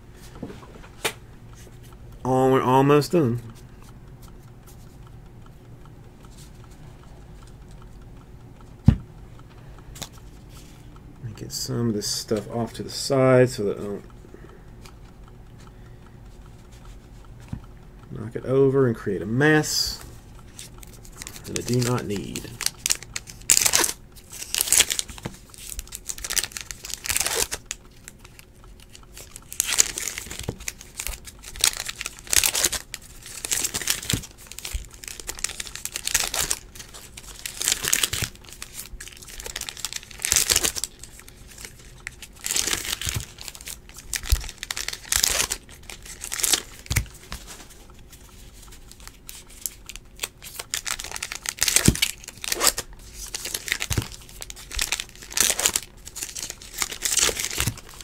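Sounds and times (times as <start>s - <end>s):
cards being handled: 20.0s - 58.0s
foil wrappers crinkling and tearing: 20.6s - 47.7s, 48.5s - 58.0s.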